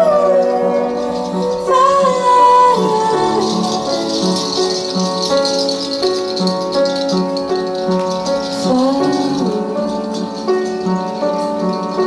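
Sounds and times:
woman singing: 0:00.0 - 0:05.2, 0:08.5 - 0:10.3
high steady rattling rhythm: 0:00.0 - 0:12.0.

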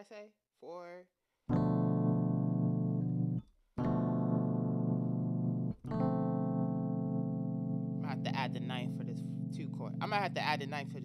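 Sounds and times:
keyboard chords: 0:01.5 - 0:11.0.

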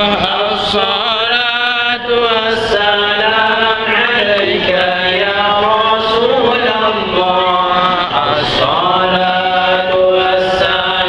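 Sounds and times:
men chanting sustained notes: 0:00.0 - 0:11.0.

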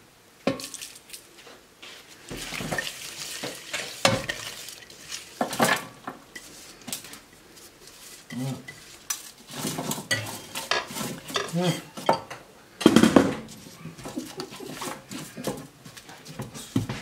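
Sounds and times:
vegetables clattering on metal tray: 0:00.5 - 0:01.3, 0:02.3 - 0:07.3, 0:07.9 - 0:17.0.

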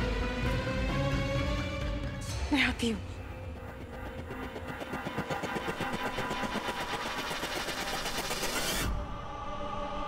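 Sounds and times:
fast rhythmic clatter: 0:02.8 - 0:08.8.

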